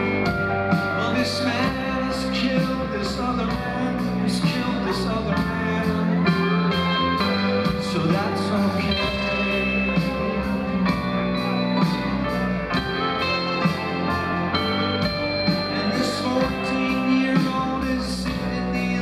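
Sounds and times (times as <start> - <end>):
rock band playing live: 0.0 - 19.0
steady drum beat: 0.0 - 19.0
man singing: 0.7 - 11.0, 15.0 - 19.0.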